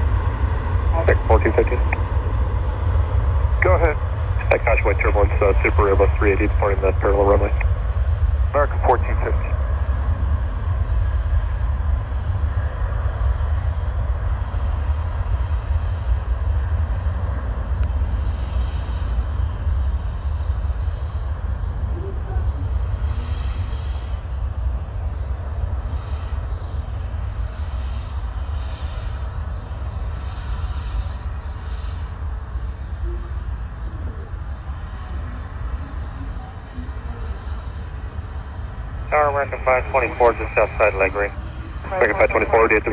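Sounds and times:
jet engines rumbling: 0.0 - 42.9.

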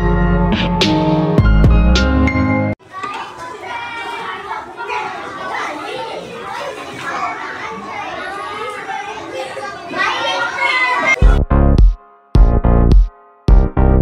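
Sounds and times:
children chattering: 2.8 - 11.4.

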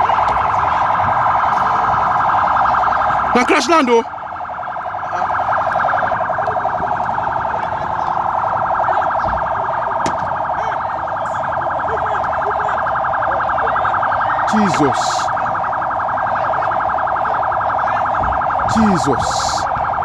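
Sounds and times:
electronic alarm pulsing tone: 0.0 - 20.0.

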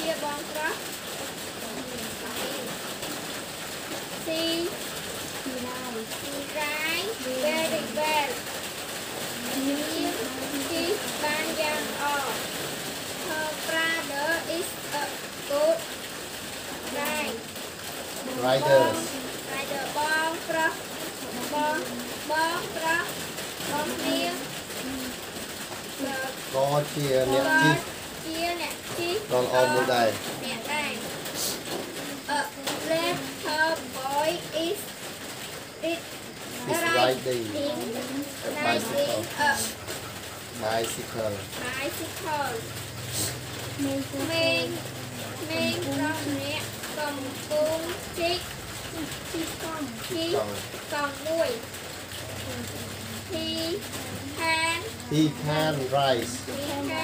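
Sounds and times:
child talking: 0.0 - 3.2, 3.9 - 8.6, 9.3 - 12.6, 13.2 - 16.1, 16.7 - 17.6, 18.2 - 25.3, 25.9 - 35.0, 35.8 - 39.9, 40.8 - 57.0
steady rain-like hiss: 0.0 - 57.0
deeper voice speaking: 18.3 - 19.1, 26.6 - 27.9, 29.3 - 30.2, 36.6 - 39.7, 55.0 - 56.5.

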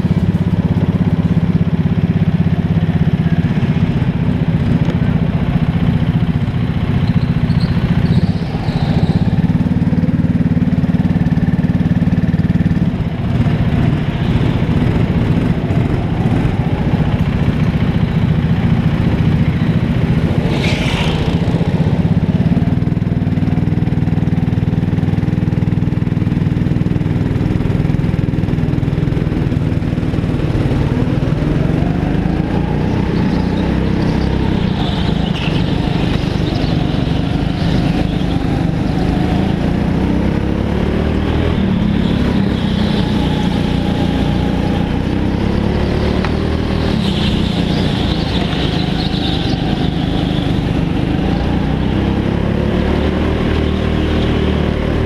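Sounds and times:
go-kart engine running hard: 0.0 - 55.0.

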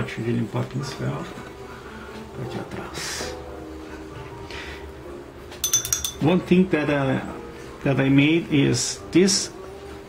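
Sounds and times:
paintbrush clinking in glass jar: 5.6 - 6.5.

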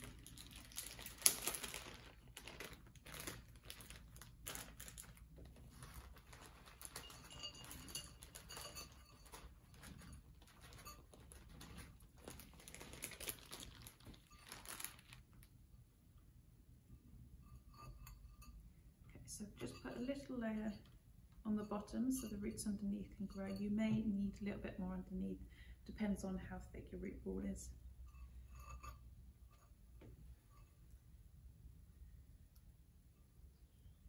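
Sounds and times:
plastic bag ripping: 0.0 - 7.3, 11.3 - 15.5
plastic bag crinkling: 0.0 - 15.6.

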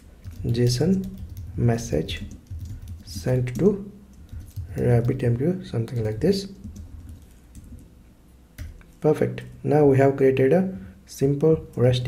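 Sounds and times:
computer keyboard keystrokes: 0.2 - 5.2, 5.9 - 7.9.

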